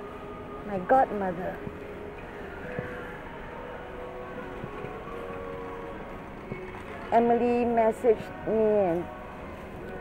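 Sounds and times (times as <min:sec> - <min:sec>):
faint held store tones: 0:00.0 - 0:10.0.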